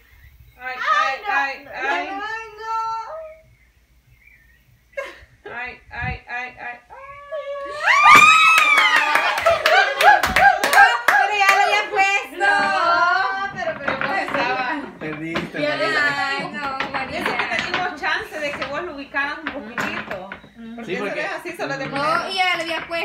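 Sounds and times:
excited chatter: 6.7s - 23.0s
women laughing and shrieking: 6.9s - 11.4s
hand clapping: 8.2s - 11.8s.

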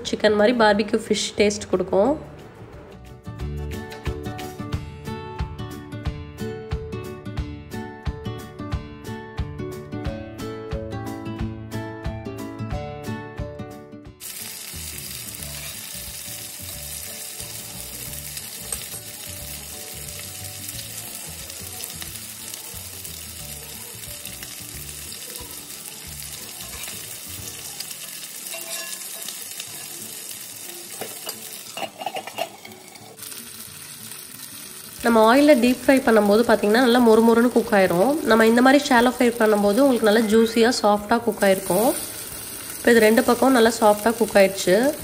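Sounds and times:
fish sizzling in oil: 14.2s - 45.0s
oil crackling: 14.2s - 45.0s.

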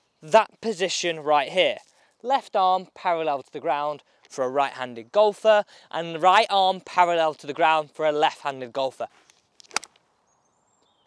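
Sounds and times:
short sharp clicks: 9.2s - 10.0s.

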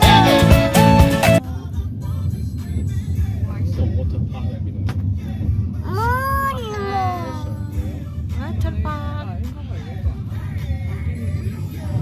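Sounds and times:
car driving rumble from inside: 1.4s - 12.0s
long high drawn-out voice: 5.8s - 8.0s.

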